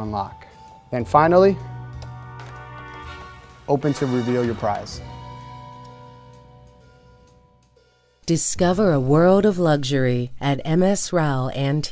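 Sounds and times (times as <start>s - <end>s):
background music held notes: 0.0s - 8.3s.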